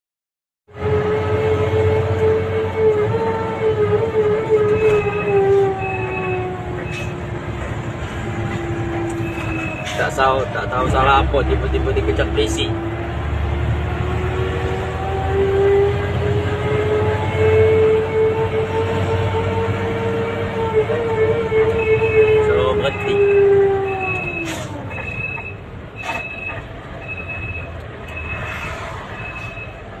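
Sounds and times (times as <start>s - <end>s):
engine and road rumble: 0.7s - 30.0s
air horn blast: 0.8s - 7.3s.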